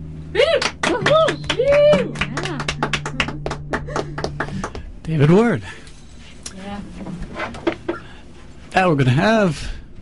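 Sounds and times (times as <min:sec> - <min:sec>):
acoustic guitar strumming: 0:00.0 - 0:08.6.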